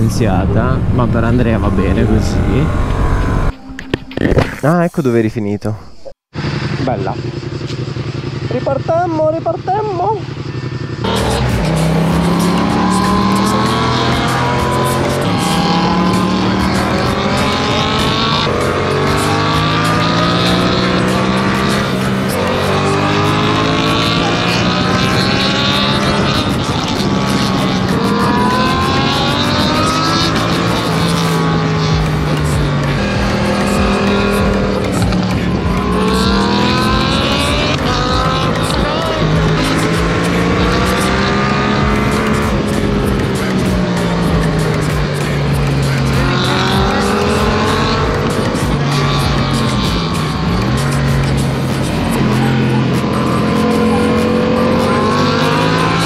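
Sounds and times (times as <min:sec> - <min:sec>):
motorcycle engine revving: 0:00.0 - 0:03.8, 0:06.1 - 0:56.0.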